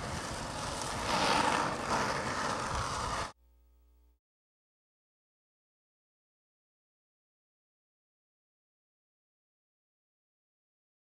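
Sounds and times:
skateboard wheels rolling on asphalt: 0.0s - 3.4s.

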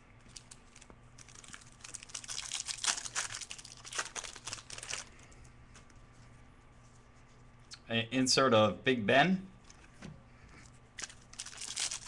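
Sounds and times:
wrapper crinkling: 0.2s - 6.0s, 11.0s - 12.0s.

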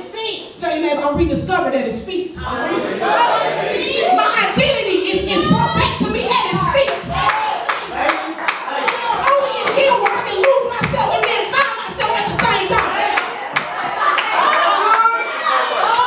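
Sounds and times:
raised voices: 2.4s - 16.0s
congregation clapping: 6.6s - 16.0s.

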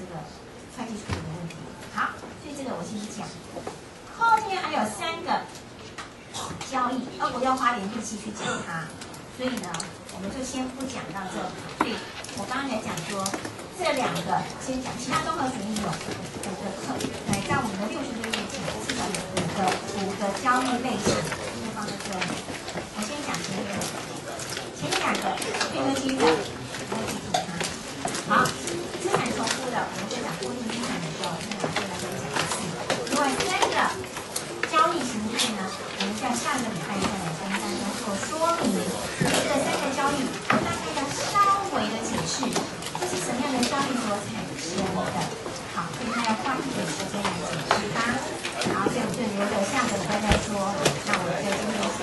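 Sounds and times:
woman speaking into a microphone: 0.0s - 24.1s, 24.8s - 52.0s.

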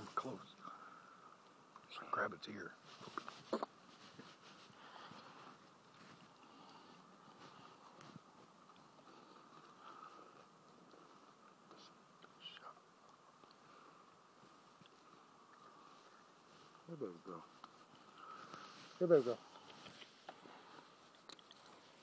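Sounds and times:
faint steady hiss: 0.0s - 22.0s
small soft sounds: 0.0s - 22.0s.

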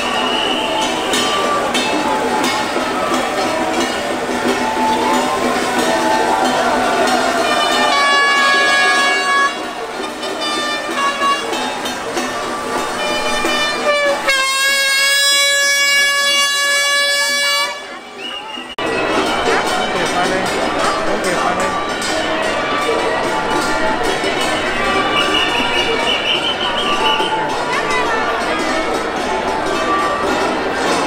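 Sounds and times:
horn blast: 0.0s - 19.0s
crowd noise: 0.0s - 31.0s
firecrackers crackling: 0.0s - 31.0s.

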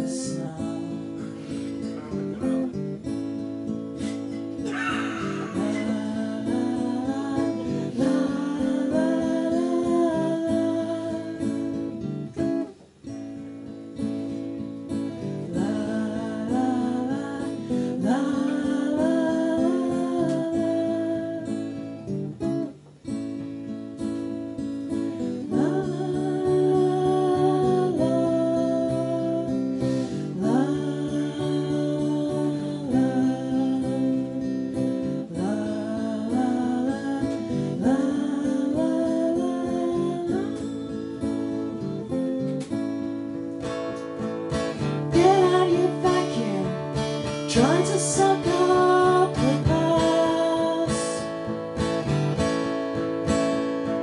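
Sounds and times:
woman singing: 0.0s - 3.2s, 4.0s - 12.8s, 14.9s - 22.8s, 24.6s - 52.7s
acoustic guitar strummed: 0.0s - 54.0s.

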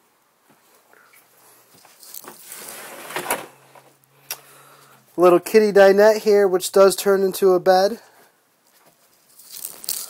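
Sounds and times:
wooden door sliding on track: 2.5s - 3.9s.

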